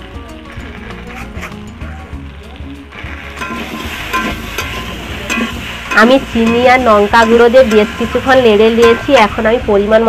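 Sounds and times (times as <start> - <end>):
vegetables sizzling: 2.2 - 10.0
spatula scraping pan: 3.2 - 9.6
metallic clinks against pan: 3.4 - 9.4.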